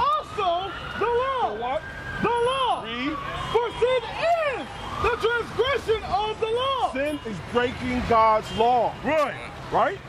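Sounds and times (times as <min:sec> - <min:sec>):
faint siren: 0:00.0 - 0:09.0.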